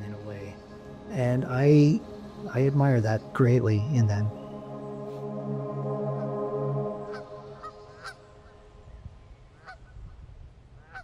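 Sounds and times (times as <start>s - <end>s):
geese honking: 0.0s - 8.8s, 9.6s - 9.9s
soft background music: 0.0s - 9.4s.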